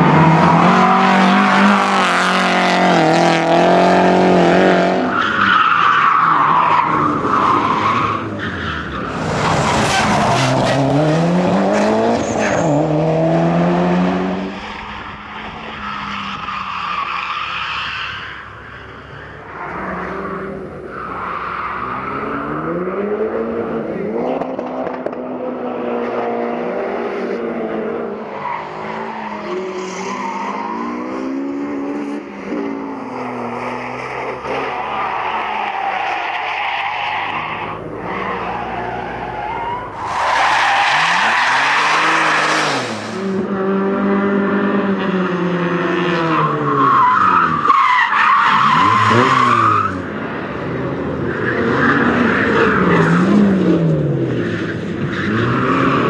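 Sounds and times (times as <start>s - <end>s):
rally car engines revving: 0.0s - 56.0s.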